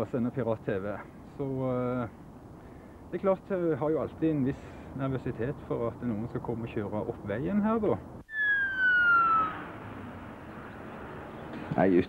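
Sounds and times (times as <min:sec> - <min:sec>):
electronic tone gliding downward: 0:08.3 - 0:11.0.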